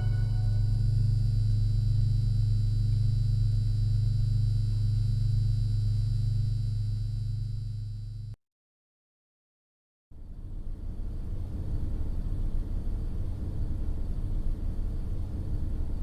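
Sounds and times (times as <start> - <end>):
deep bass synth tone: 0.0 - 8.3.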